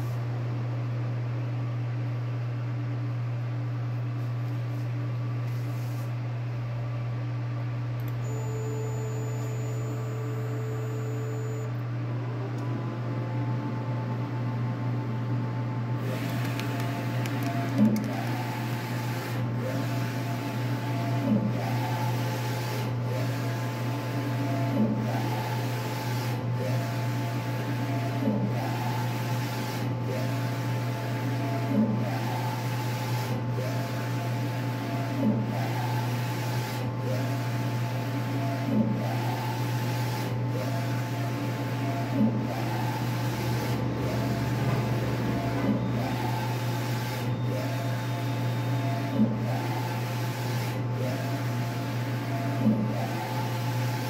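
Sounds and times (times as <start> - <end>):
printer low hum: 4.2 - 54.0
print carriage motor whine: 8.0 - 54.0.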